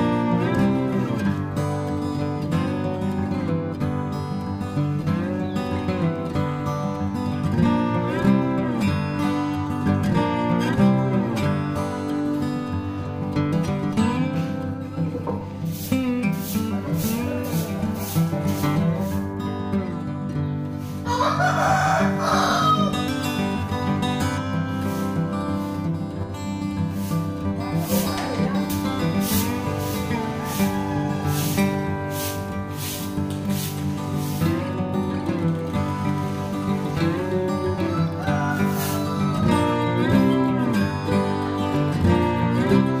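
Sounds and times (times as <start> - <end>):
guitar music: 0.0 - 43.0
rooster crowing: 21.0 - 23.4, 29.3 - 33.0, 36.4 - 40.0.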